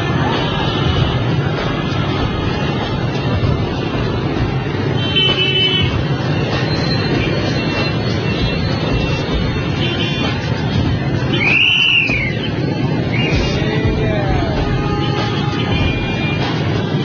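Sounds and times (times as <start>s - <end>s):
motorbikes and scooters traffic: 0.0s - 17.0s.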